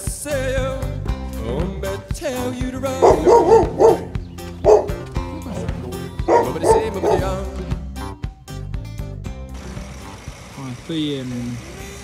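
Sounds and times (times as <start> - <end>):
background music: 0.0 - 12.0
dog barking: 3.0 - 7.4.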